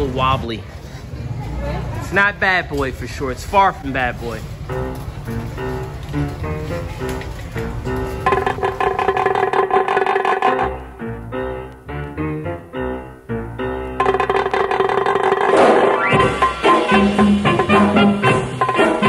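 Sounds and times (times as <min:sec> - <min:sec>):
background music with drums: 0:08.2 - 0:10.8, 0:14.0 - 0:19.0.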